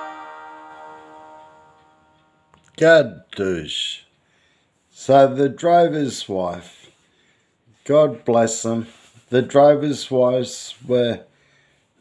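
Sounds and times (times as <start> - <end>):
plucked string chord ringing: 0.0 - 2.5.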